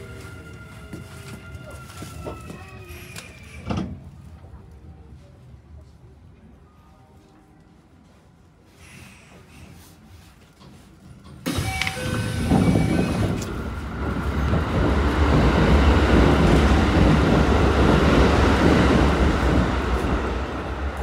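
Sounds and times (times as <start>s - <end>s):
electric train rumbling on rails: 0.0s - 21.0s.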